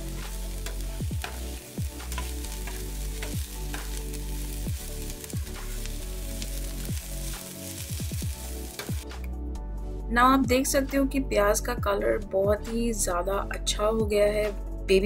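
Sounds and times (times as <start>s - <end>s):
onions sizzling in oil: 0.0s - 9.3s.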